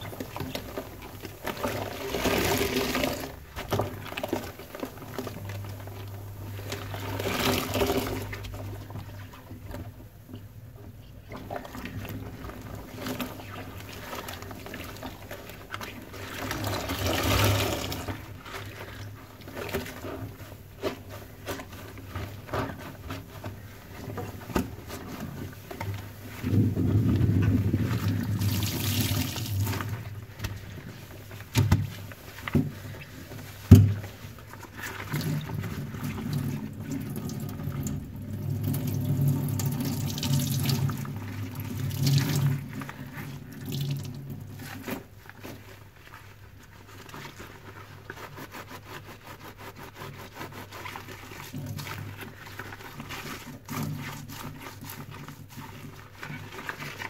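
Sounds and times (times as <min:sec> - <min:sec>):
sponges sloshing in water: 0:00.0 - 0:57.0.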